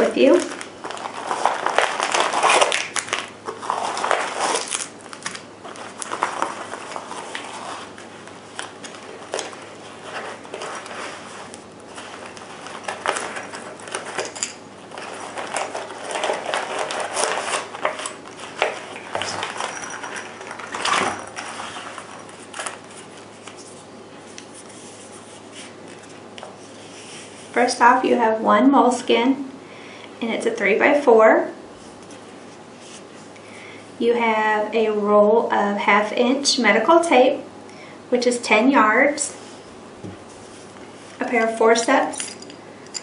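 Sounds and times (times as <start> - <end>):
plastic wrappers crinkling: 0.0 - 26.8.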